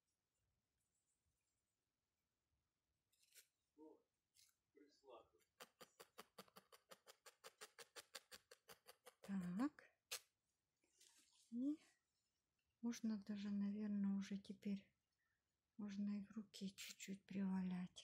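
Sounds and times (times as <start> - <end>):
woman wordless voice sounds: 9.2 - 9.9.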